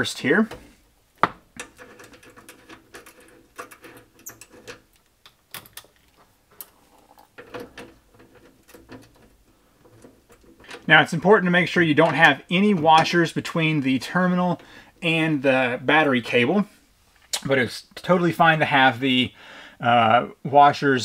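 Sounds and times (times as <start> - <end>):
metal clicks and scrapes: 1.6 - 10.9.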